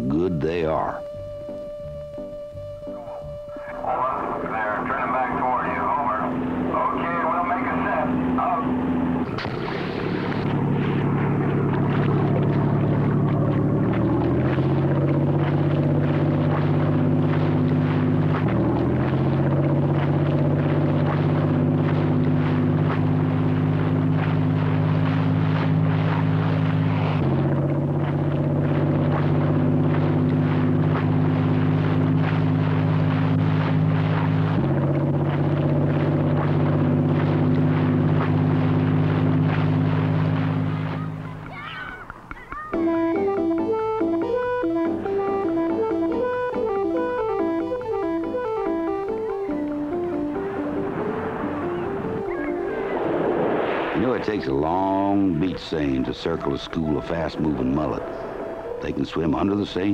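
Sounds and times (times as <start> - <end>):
boat engine running: 0.0 - 59.9.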